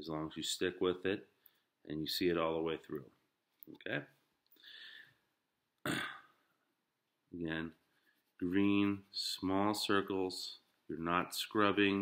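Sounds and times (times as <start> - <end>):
person throat noise: 5.8 - 6.5.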